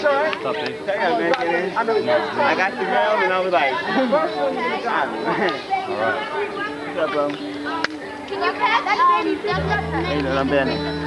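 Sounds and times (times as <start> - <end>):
children chattering at play: 0.0 - 11.0.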